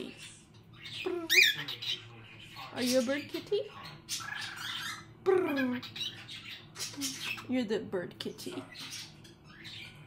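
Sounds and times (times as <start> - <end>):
cockatiel chattering: 0.7 - 7.5.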